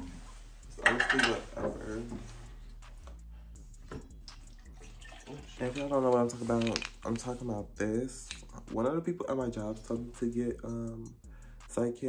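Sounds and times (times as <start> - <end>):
handling small objects: 5.7 - 7.4.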